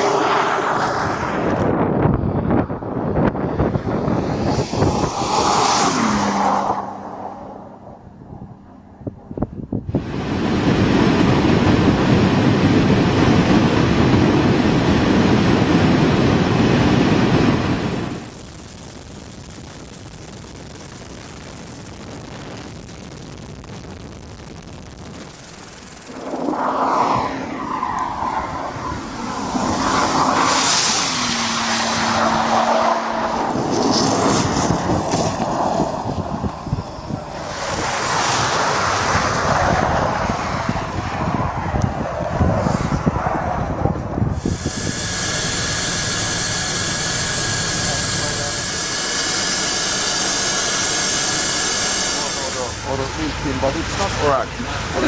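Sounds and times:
rushing noise: 0.0s - 8.9s, 9.8s - 55.0s
car engine passing by: 3.6s - 8.1s, 26.1s - 35.9s
whining tones: 11.0s - 35.4s, 40.8s - 55.0s.

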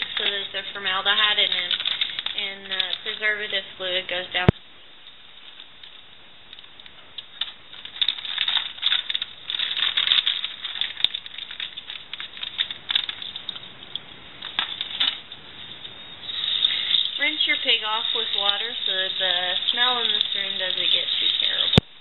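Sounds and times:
faucet water running: 0.0s - 4.5s, 16.2s - 21.8s
plastic pouch crinkling: 0.0s - 4.5s, 5.4s - 21.8s.

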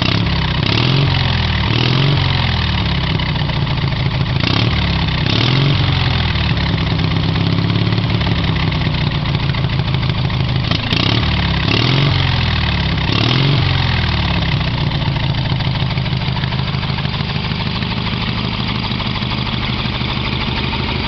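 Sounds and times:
small engine idling and revving: 0.0s - 21.0s.

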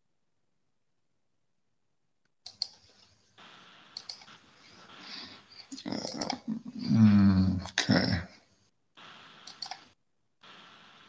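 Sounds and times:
faint clicks: 2.2s - 4.4s, 9.2s - 11.0s.

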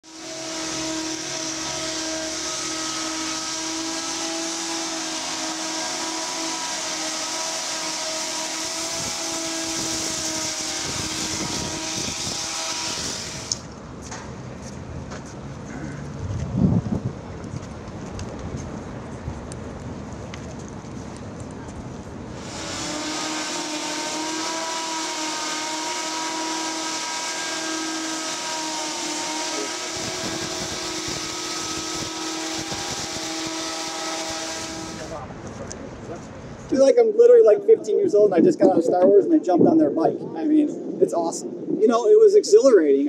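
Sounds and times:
hoverbike propellers whining: 0.0s - 13.8s, 22.3s - 35.2s.

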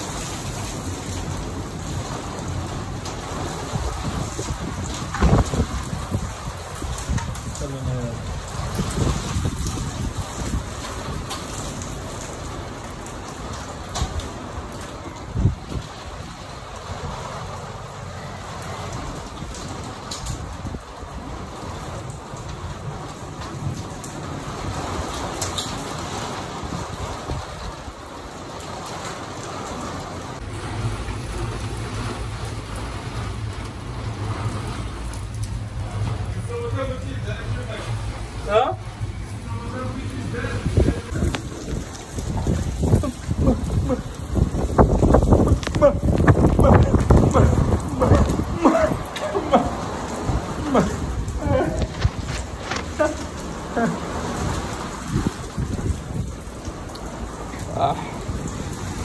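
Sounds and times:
heavy rain: 0.0s - 59.0s.

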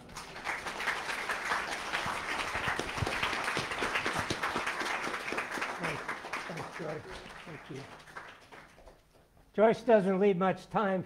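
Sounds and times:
audience applauding: 0.0s - 9.2s.

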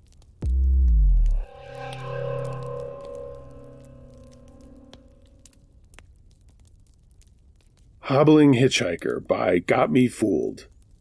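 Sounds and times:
guitar music: 0.9s - 5.3s
campfire crackling: 5.3s - 9.8s.

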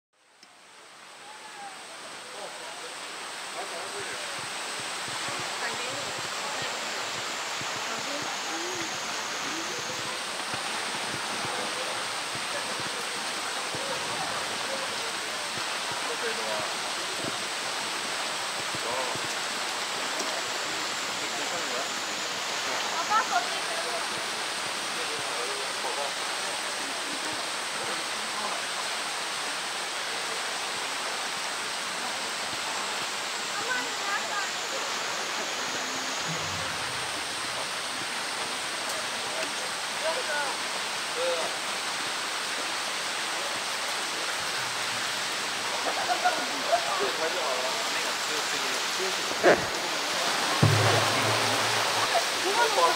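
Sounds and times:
rushing water hiss: 0.2s - 52.9s
distant voices: 47.8s - 52.9s
brief louder sounds: 50.4s - 52.4s.

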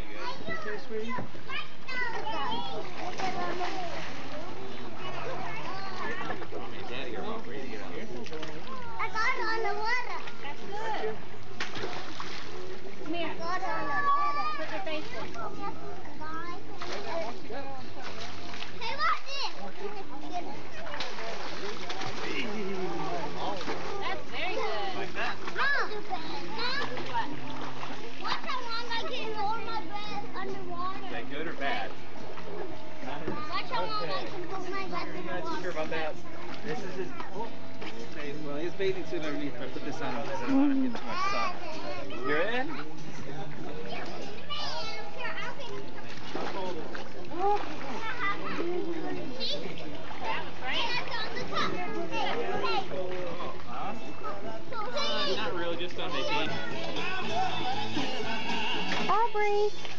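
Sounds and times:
children talking and calling out: 0.0s - 6.5s, 8.6s - 11.2s, 12.0s - 17.8s, 18.5s - 21.6s, 23.8s - 31.2s, 32.5s - 37.7s, 40.3s - 46.3s, 47.2s - 59.9s
water splashing in a pool: 0.1s - 57.0s, 58.8s - 59.9s.

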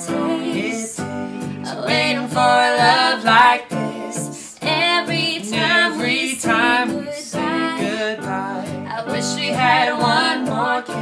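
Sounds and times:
person singing: 0.0s - 11.0s
strummed acoustic guitar: 0.0s - 11.0s.

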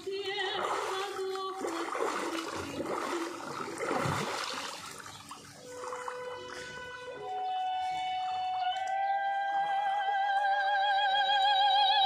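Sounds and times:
water sloshing and splashing: 0.0s - 9.2s
held musical tones: 5.5s - 12.0s.

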